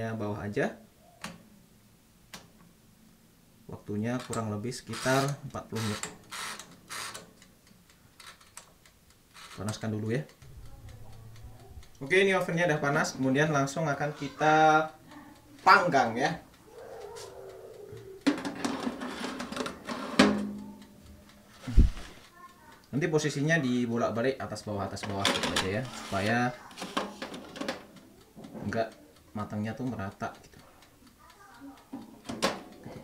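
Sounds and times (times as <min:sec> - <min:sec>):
oven timer dial ticking: 0:03.8 - 0:33.0
metal tray scraping oven guides: 0:18.3 - 0:20.5, 0:25.1 - 0:27.8.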